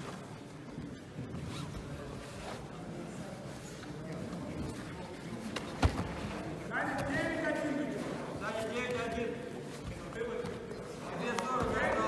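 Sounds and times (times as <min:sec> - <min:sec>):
fabric rustling and scraping: 0:01.3 - 0:12.0.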